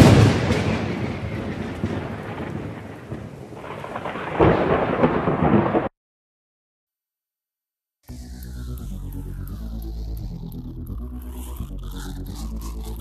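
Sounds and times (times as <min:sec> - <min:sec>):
thunder-like rolling rumble: 0:00.0 - 0:05.9.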